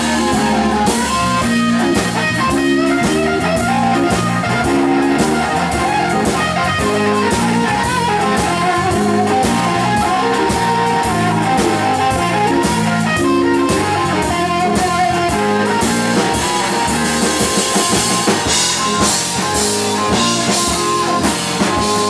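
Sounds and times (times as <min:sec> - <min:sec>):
drum kit with cymbals: 0:00.0 - 0:22.0
electric guitar lead: 0:00.0 - 0:22.0
walking bass line: 0:00.0 - 0:22.0.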